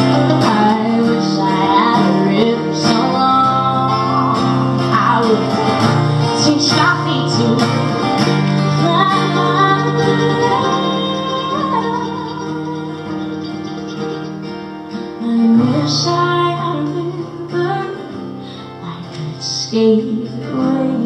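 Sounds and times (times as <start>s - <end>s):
acoustic guitar chords: 0.0s - 21.0s.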